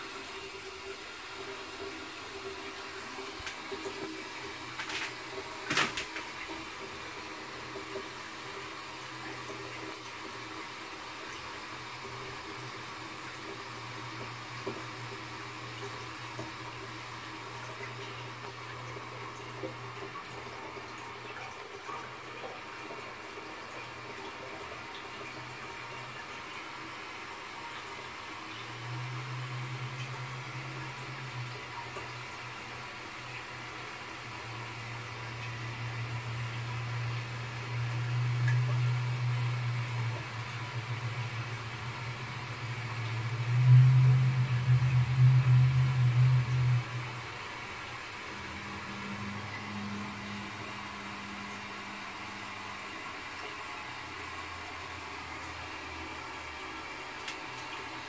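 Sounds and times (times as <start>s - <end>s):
toilet cistern water hissing: 0.0s - 58.0s
low hum: 28.5s - 52.8s.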